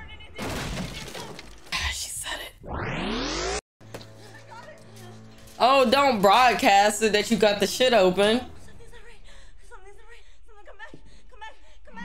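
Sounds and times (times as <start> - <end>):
crash of something breaking: 0.4 - 1.8.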